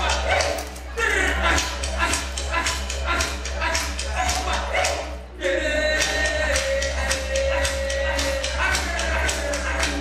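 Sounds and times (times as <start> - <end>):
rhythmic knocks: 5.8 - 10.0.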